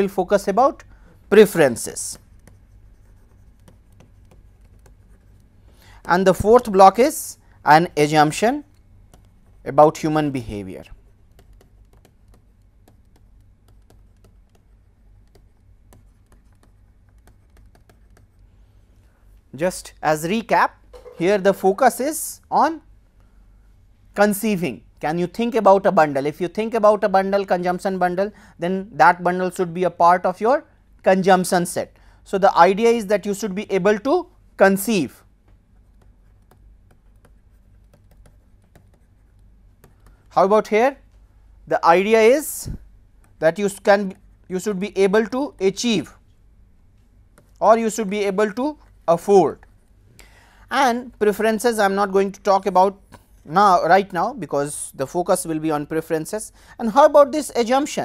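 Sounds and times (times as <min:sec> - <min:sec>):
low steady hum: 0:00.0 - 0:58.0
stylus tapping on pen tablet: 0:02.2 - 0:05.2, 0:11.3 - 0:18.4.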